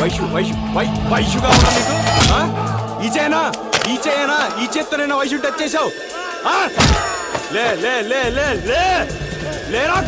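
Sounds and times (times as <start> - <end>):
action film fight score: 0.0 - 10.0.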